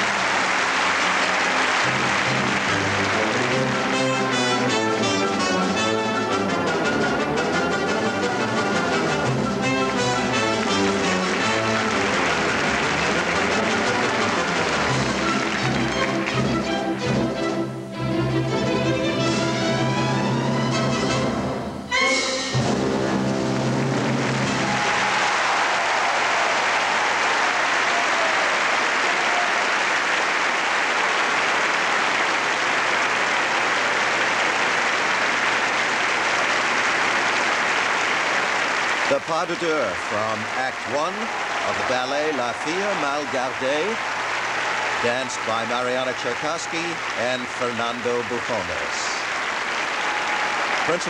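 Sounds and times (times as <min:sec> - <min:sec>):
audience applauding: 0:00.0 - 0:17.4, 0:22.7 - 0:51.0.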